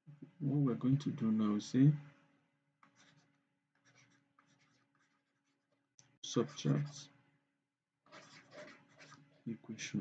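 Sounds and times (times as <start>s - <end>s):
stylus scratching while writing: 2.8s - 7.0s, 8.1s - 9.6s.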